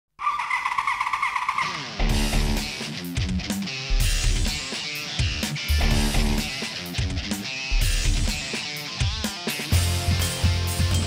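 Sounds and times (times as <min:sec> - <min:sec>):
motorcycle engine revving: 0:00.2 - 0:06.7.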